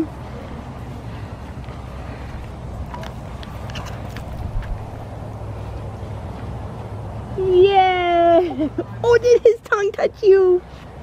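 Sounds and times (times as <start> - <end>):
wind rumbling on microphone: 0.0 - 7.4.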